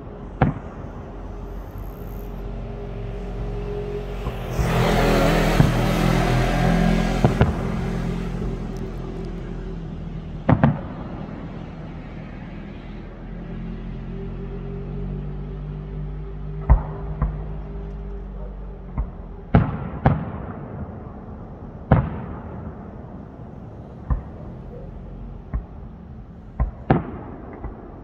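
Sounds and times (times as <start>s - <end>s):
steady low hum: 0.0s - 28.0s
fireworks bangs: 0.3s - 11.5s, 25.5s - 28.0s
fireworks hissing crackle: 0.5s - 9.7s.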